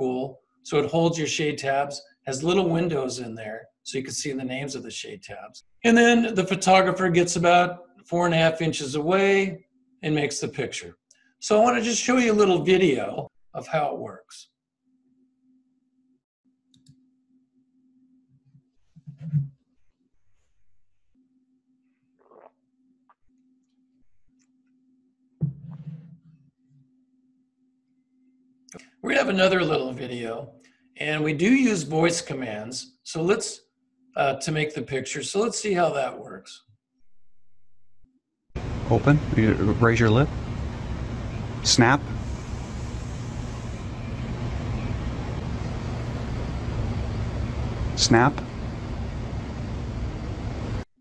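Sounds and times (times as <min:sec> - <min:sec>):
even hiss: 0:38.6 - 0:50.8
faint steady hum: 0:38.6 - 0:50.9.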